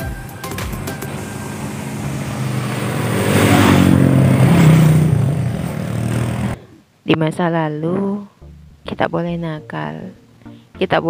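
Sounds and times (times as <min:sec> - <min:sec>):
vehicle passing by: 0:00.0 - 0:06.6.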